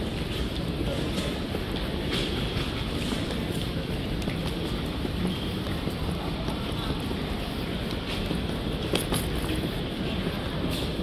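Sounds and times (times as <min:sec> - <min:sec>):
footsteps on tiled floor: 0:00.0 - 0:11.0
terminal concourse rumble: 0:00.0 - 0:11.0.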